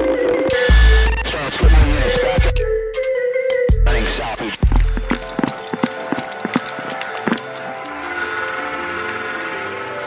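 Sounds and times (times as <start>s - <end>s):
running footsteps on pavement: 4.6s - 7.7s.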